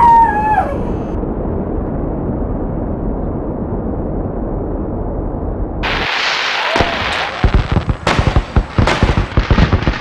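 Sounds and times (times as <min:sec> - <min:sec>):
muffled rocket rumbling: 0:00.0 - 0:10.0.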